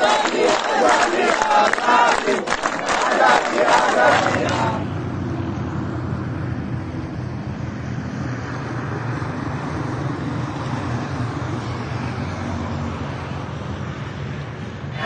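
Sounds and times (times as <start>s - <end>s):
road traffic rumble: 0.0s - 15.0s.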